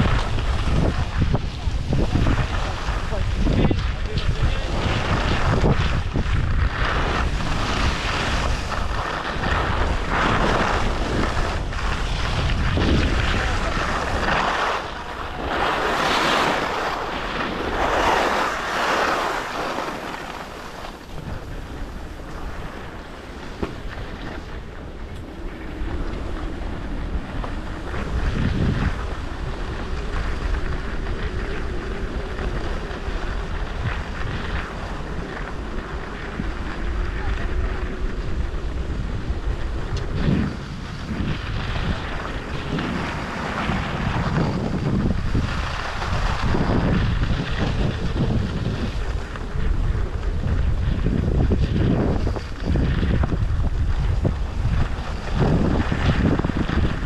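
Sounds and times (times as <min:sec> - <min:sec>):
skis hissing and scraping on snow: 0:00.0 - 0:57.0
wind rushing over microphone: 0:00.0 - 0:57.0.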